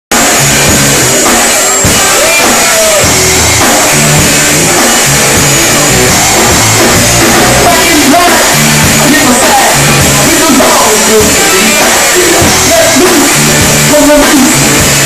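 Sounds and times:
live rock band playing: 0.1 - 15.0.

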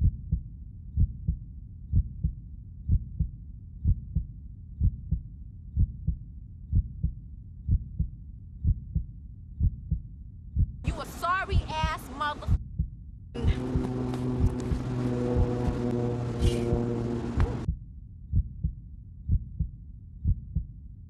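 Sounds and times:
heartbeat thumps: 0.0 - 20.7.

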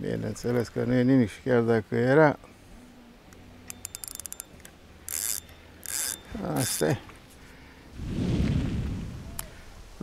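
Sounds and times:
fishing reel ratchet clicks: 3.6 - 7.0.

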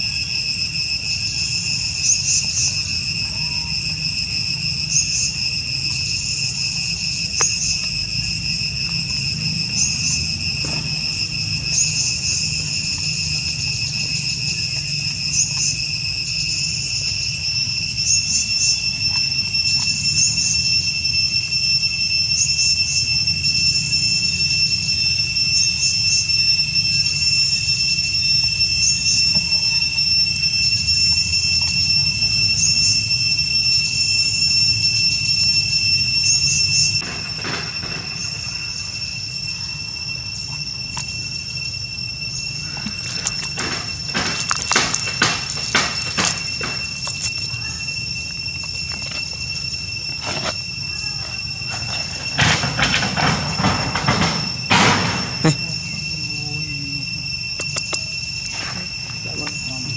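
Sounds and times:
high-pitched insect drone: 0.0 - 59.9.

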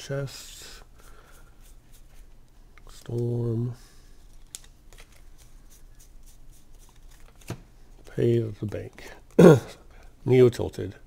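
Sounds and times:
cards rustling and sliding: 4.1 - 9.0.

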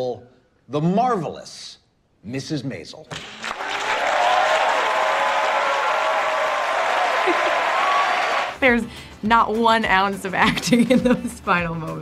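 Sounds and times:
audience applauding: 3.1 - 8.6.

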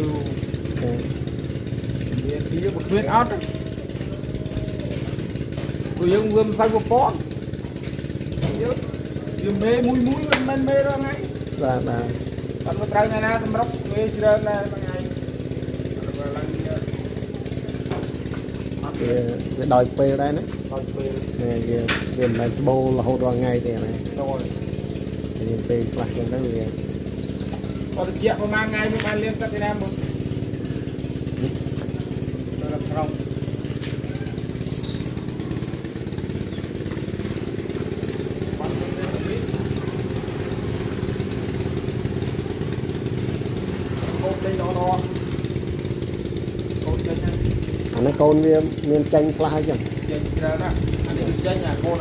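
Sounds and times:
small engine humming: 0.0 - 52.0.

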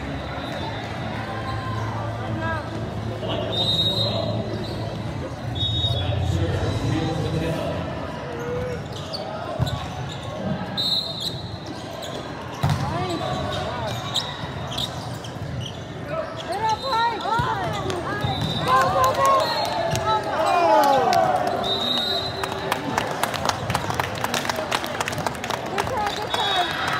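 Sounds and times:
sneaker squeaks on court floor: 4.1 - 5.5, 8.3 - 18.8
players shouting: 16.3 - 21.8.

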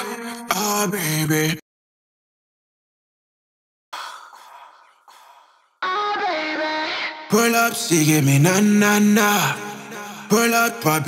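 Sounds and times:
song with sung vocals: 0.0 - 1.6, 4.0 - 11.0.

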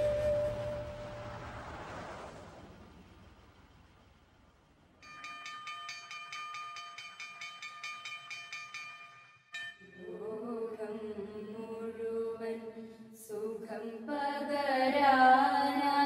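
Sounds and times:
pulsing high ringing tone: 0.0 - 1.6.

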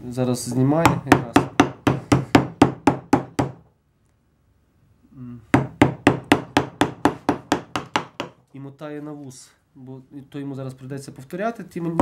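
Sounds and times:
mallet tapping chisel into wood: 0.8 - 3.6, 5.6 - 8.4.

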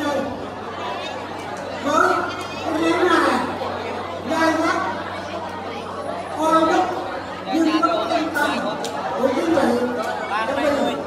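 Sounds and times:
guests talking: 0.0 - 11.0.

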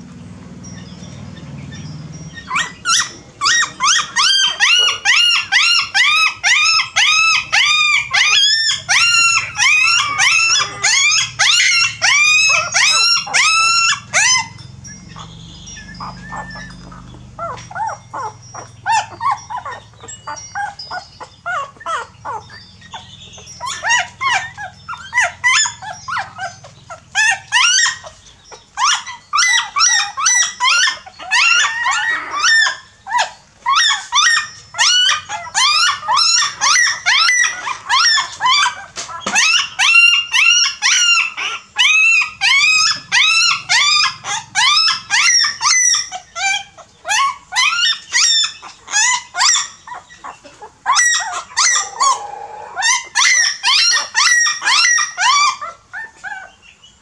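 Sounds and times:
puppies whining: 0.0 - 57.0.

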